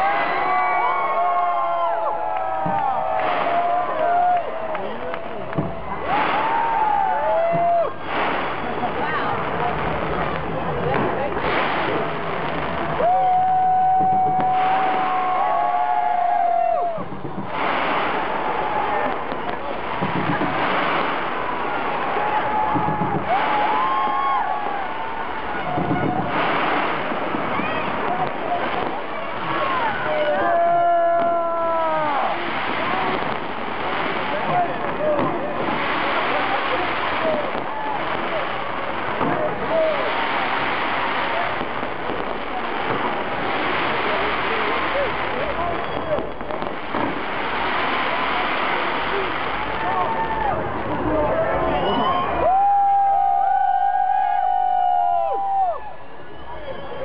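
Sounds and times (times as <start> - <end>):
crowd cheering and whooping: 0.0 - 8.4, 11.4 - 57.0
fireworks bangs and crackles: 0.0 - 57.0.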